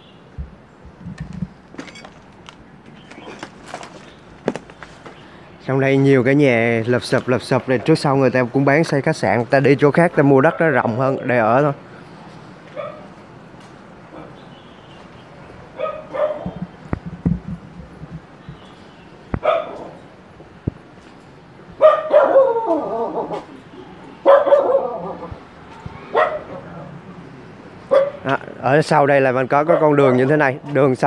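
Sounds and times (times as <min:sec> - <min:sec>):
dog barking: 0:12.8 - 0:13.1, 0:15.8 - 0:16.6, 0:19.4 - 0:20.0, 0:21.8 - 0:23.4, 0:24.2 - 0:25.4, 0:26.0 - 0:26.7, 0:27.9 - 0:28.2, 0:29.7 - 0:30.0.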